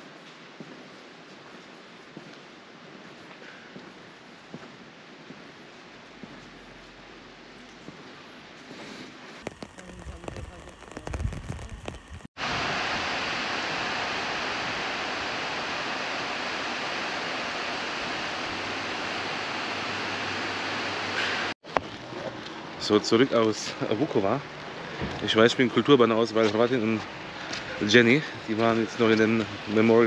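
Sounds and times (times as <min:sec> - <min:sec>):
faint footsteps: 0:00.0 - 0:12.3
heavy rain on a roof: 0:09.3 - 0:21.6.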